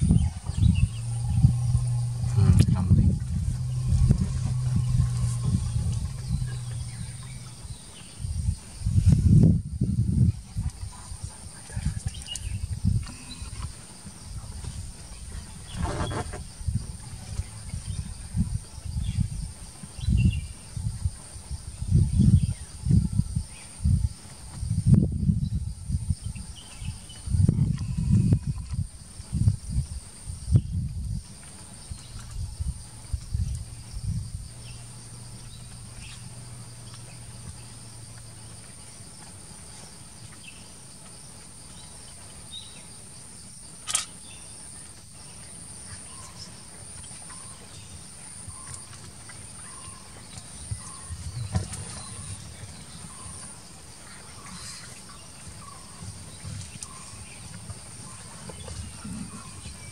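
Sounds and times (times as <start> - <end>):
louder low sound: 0.0 - 8.4
elephant low rumble: 0.0 - 59.9
high insect drone: 0.0 - 59.9.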